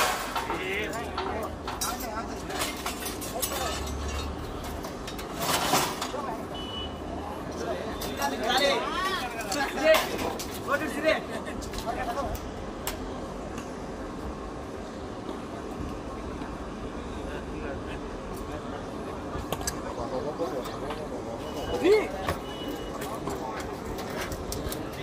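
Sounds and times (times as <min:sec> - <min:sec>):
men talking indistinctly: 0:00.3 - 0:04.1, 0:07.4 - 0:12.5, 0:17.2 - 0:25.0.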